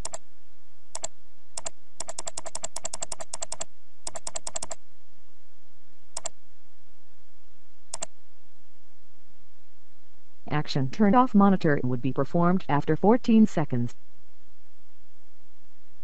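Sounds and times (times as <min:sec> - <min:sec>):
computer mouse clicks: 0:00.0 - 0:00.2, 0:01.0 - 0:04.8, 0:06.2 - 0:06.4, 0:07.9 - 0:08.1
faint low hum: 0:00.0 - 0:16.0.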